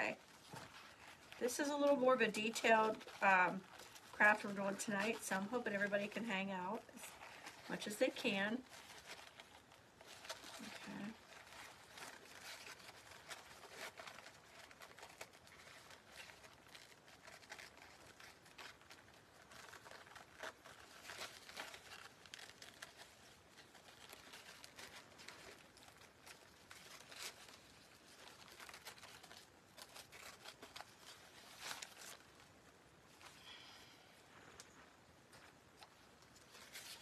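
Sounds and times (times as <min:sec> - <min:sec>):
paper napkin rustling: 0:00.0 - 0:37.0.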